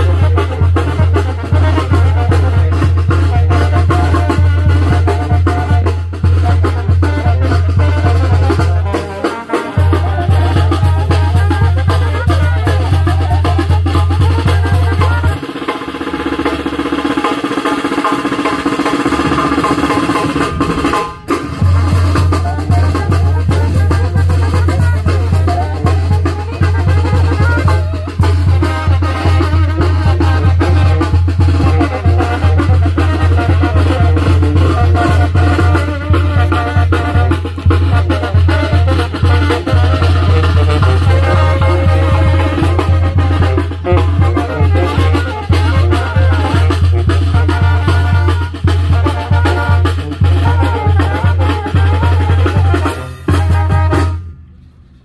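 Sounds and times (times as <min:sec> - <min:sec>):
rapid bass drum and snare: 0:00.0 - 0:54.2
brass band music: 0:00.0 - 0:55.0.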